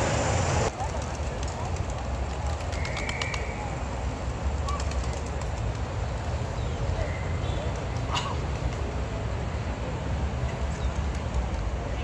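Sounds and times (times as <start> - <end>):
pigeon wings flapping: 0.7 - 3.6, 4.6 - 6.3.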